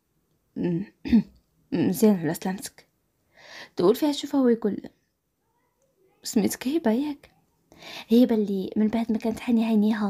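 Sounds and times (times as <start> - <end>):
woman speaking: 0.6 - 2.9, 3.6 - 5.0, 6.2 - 7.3, 7.9 - 10.0
woman clearing her throat: 0.8 - 1.4.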